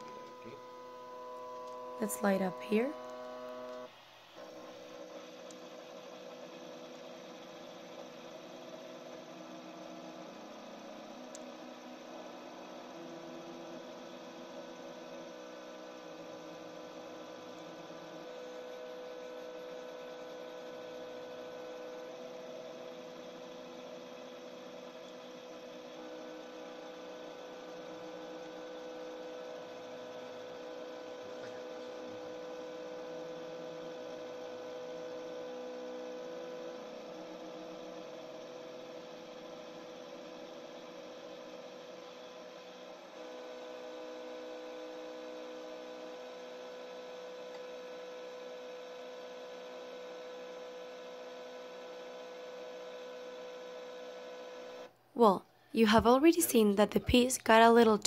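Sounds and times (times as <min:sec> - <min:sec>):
stepper motors humming: 0:00.0 - 0:09.0.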